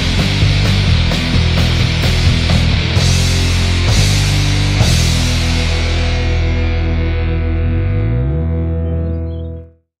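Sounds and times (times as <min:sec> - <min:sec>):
distorted electric guitar chord: 0:00.0 - 0:09.7
low guitar note sliding upward: 0:02.4 - 0:09.7.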